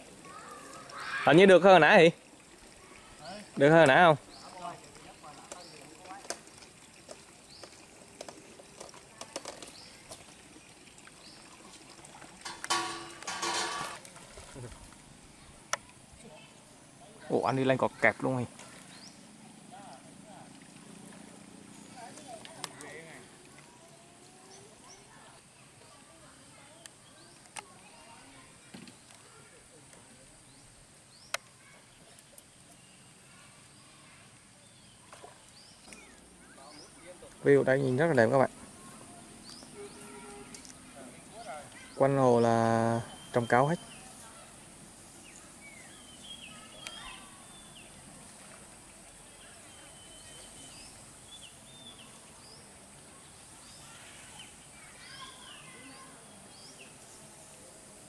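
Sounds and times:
distant chatter: 0.0 - 58.0
steady high hiss: 0.0 - 58.0
bird chirps: 41.3 - 44.5, 45.2 - 48.1, 49.2 - 57.3.

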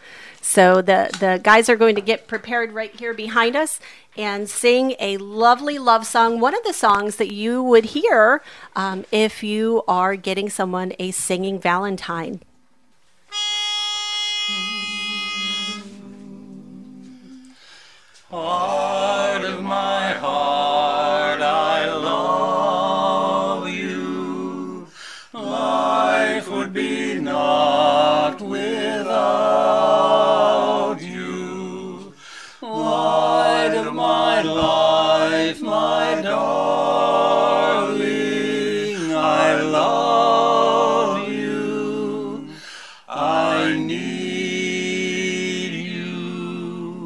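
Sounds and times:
pitch pipe note: 13.3 - 16.2
men humming a chord: 13.3 - 47.0
men singing in close harmony: 14.5 - 17.6, 18.2 - 47.0.

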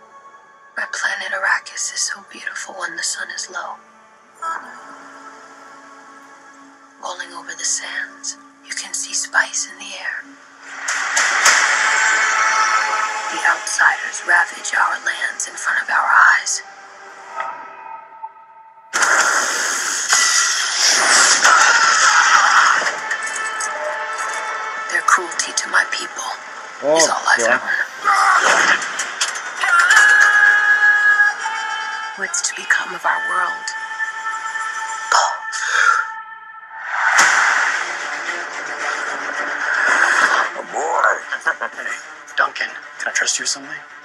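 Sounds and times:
trailer music and sound effects: 0.0 - 44.0.

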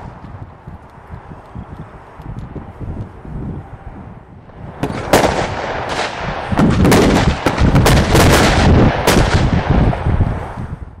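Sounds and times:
fireworks rumble: 0.0 - 11.0
fireworks bangs and cracks: 4.5 - 10.3.

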